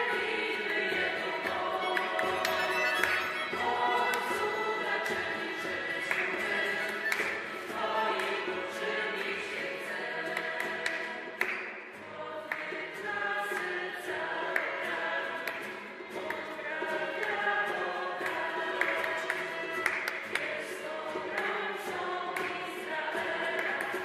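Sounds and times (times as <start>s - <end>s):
choir singing worship song: 0.0s - 24.0s
musical accompaniment: 0.0s - 24.0s.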